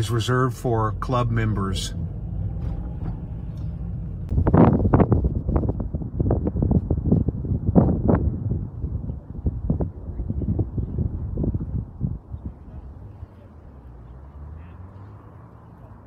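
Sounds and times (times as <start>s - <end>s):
car engine and road rumble: 0.0s - 16.0s
wind buffeting microphone: 2.0s - 13.4s.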